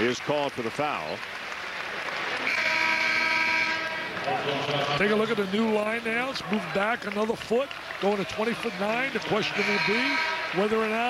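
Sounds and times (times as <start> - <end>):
arena crowd noise: 0.0 - 11.0
arena horn blast: 2.5 - 5.4, 8.4 - 11.0.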